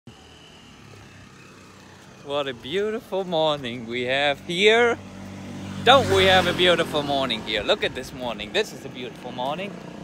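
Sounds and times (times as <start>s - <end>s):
distant traffic hum: 0.1s - 10.0s.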